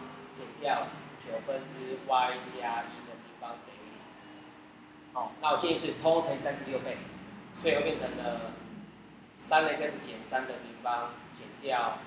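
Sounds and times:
person talking: 5.2 - 7.0, 7.6 - 8.6.

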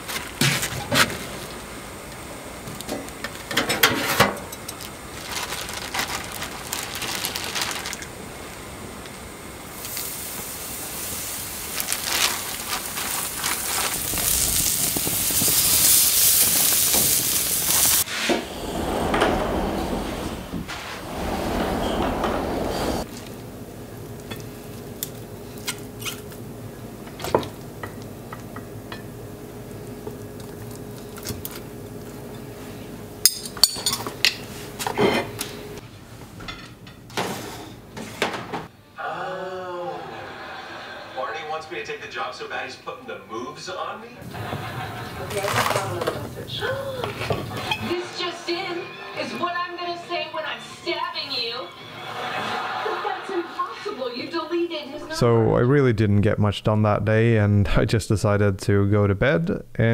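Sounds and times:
sausages sizzling on grill: 7.1 - 18.1.

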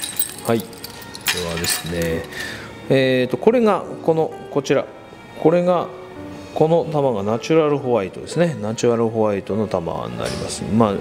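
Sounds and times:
pearls clicking together: 0.0 - 2.5.

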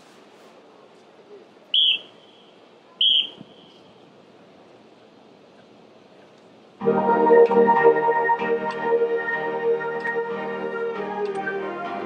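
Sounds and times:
shrill whistle blasts: 1.7 - 3.9.

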